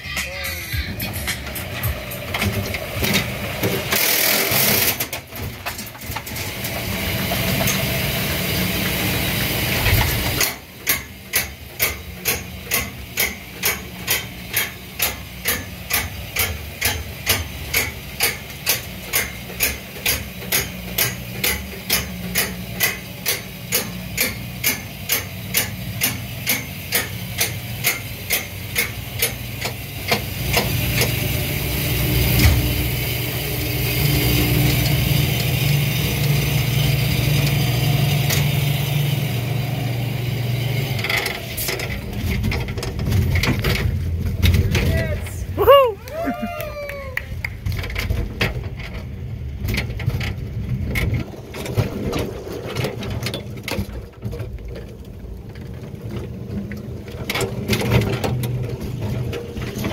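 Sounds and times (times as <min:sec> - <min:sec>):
coaster wheels rumbling on track: 0:00.0 - 0:59.9
roller coaster ratchet clacking: 0:00.1 - 0:59.9.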